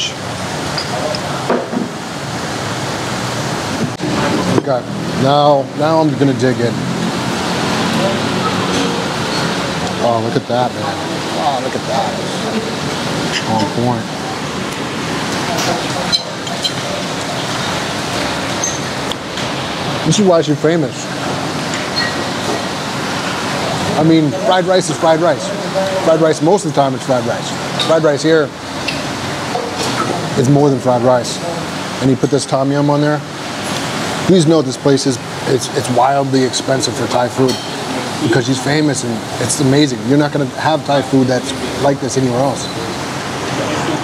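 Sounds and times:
busy eatery ambient din: 0:00.0 - 0:44.0.

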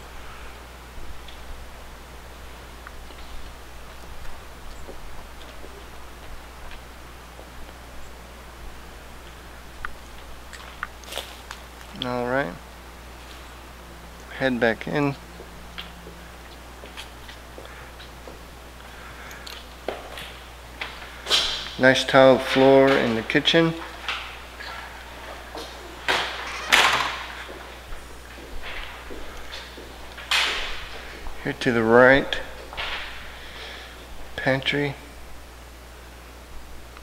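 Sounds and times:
steady low rumble: 0:00.0 - 0:26.1.

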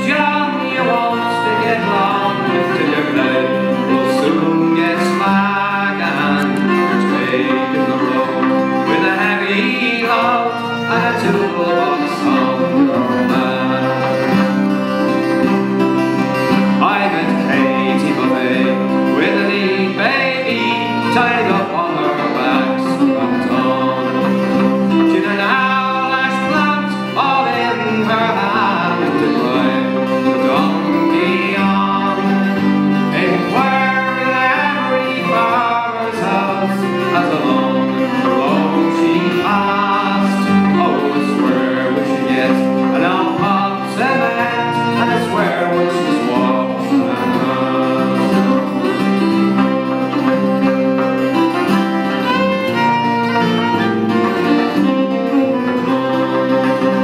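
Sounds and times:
man singing a folk ballad: 0:00.0 - 0:52.9
strummed acoustic guitar: 0:00.0 - 0:57.0.

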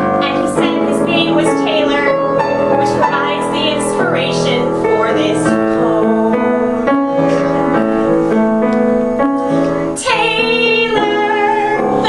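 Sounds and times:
piano accompaniment: 0:00.0 - 0:12.0
woman singing into a microphone: 0:02.9 - 0:06.7, 0:10.0 - 0:12.0.

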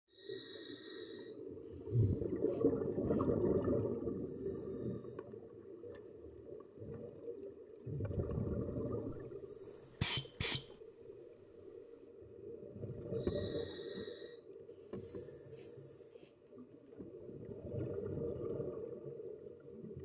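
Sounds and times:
hissing inhales through regulator: 0:00.1 - 0:01.4, 0:04.2 - 0:05.2, 0:09.4 - 0:10.7, 0:13.2 - 0:16.2.

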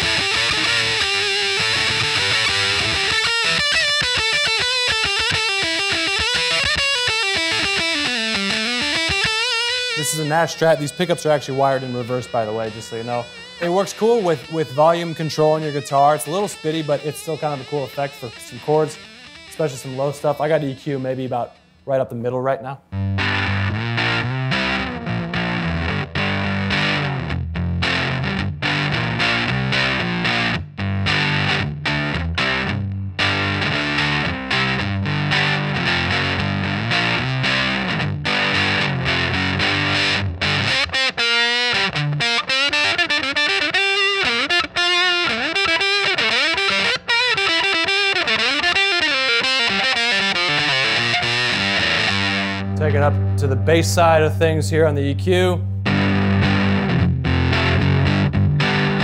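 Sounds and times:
fuzz electric guitar: 0:00.0 - 0:21.8, 0:22.9 - 0:59.0.

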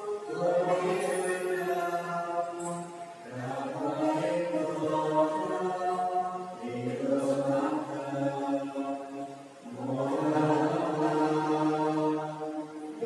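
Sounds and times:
slow hymn singing: 0:00.0 - 0:13.0.

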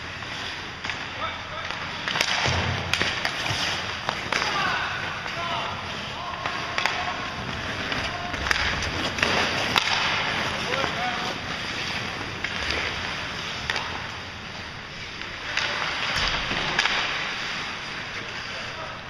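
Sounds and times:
hockey sticks and puck clicking: 0:00.0 - 0:18.6.

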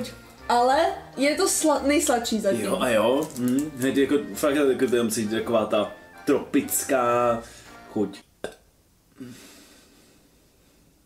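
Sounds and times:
person humming with breath out: 0:09.2 - 0:09.6.

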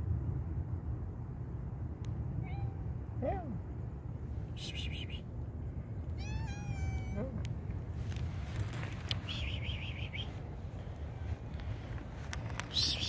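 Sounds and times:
cat meowing: 0:02.4 - 0:02.8, 0:06.2 - 0:07.4.

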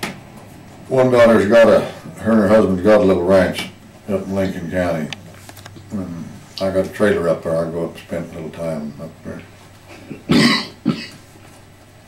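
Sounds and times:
man coughing: 0:09.9 - 0:11.2.

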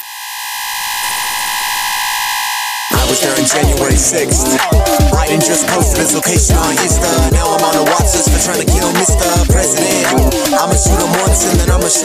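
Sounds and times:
synthesizer noise swell: 0:00.0 - 0:12.0.

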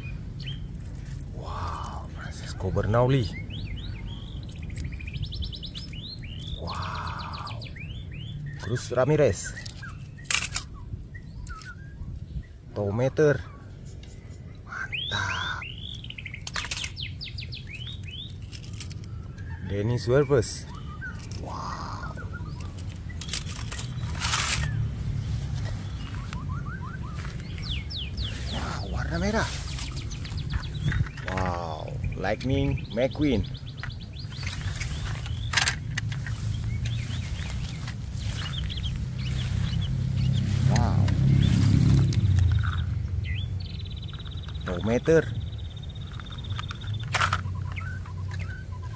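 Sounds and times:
small bird chirping: 0:00.0 - 0:48.9
brief rustle: 0:22.6 - 0:26.4.

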